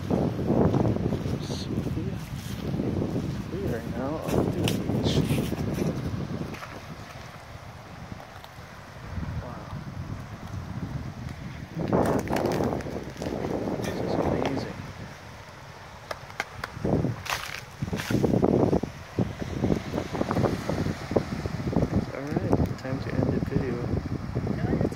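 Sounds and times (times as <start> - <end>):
small waves washing onto shore: 0.0 - 24.9
wind on microphone: 0.0 - 24.9.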